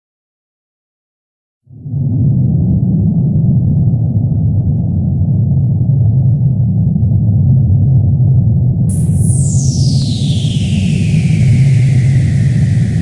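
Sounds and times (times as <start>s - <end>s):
loud low rumble: 8.9s - 13.0s.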